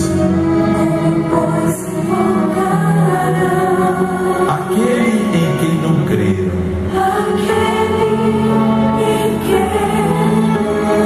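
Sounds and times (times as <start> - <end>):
backing music: 0.0 - 11.0
choir singing long notes: 0.0 - 11.0.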